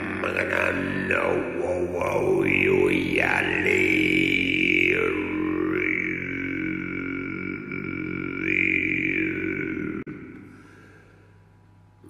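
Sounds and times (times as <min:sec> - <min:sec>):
didgeridoo drone: 0:00.0 - 0:10.8.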